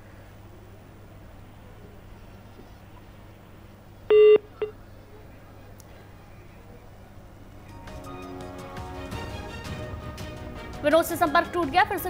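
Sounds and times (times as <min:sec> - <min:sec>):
telephone line beep: 0:04.1 - 0:04.8.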